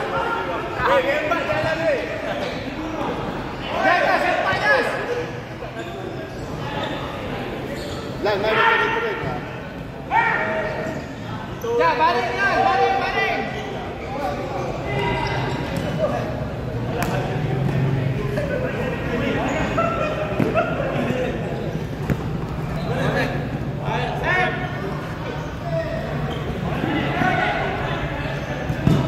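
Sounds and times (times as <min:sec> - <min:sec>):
ball being struck: 0:28.8 - 0:29.0.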